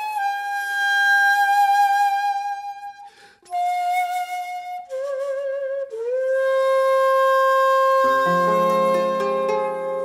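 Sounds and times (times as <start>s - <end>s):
bamboo flute long note: 0.0s - 10.0s.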